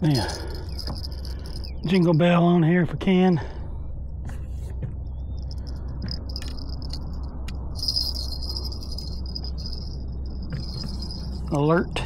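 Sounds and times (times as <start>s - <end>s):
small bell jingling: 0.1s - 2.2s, 5.4s - 11.6s.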